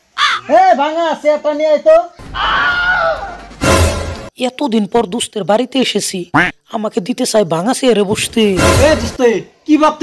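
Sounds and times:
man speaking: 4.4s - 10.0s.

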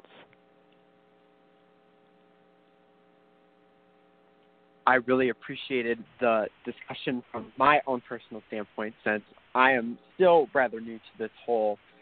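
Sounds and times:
electrical mains hum: 0.0s - 12.0s
voice: 4.9s - 11.8s.

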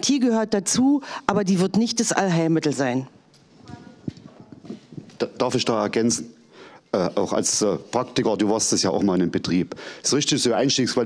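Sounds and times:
faint murmur of a voice: 3.5s - 5.1s.

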